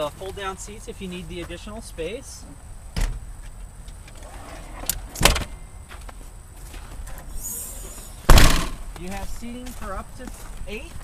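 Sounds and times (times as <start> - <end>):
tailgate slamming shut: 2.9 - 3.3, 4.1 - 5.6, 8.2 - 8.9
car seat clunk: 4.9 - 5.6, 8.3 - 8.8.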